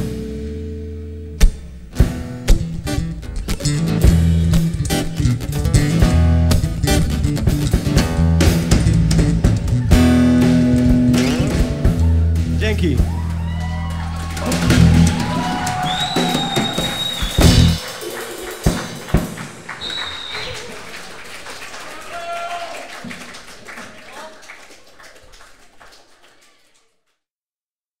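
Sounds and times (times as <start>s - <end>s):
audience applause: 13.0s - 27.1s
whistles and shouts: 14.4s - 17.9s, 19.7s - 20.9s
drum hit: 14.4s - 19.7s.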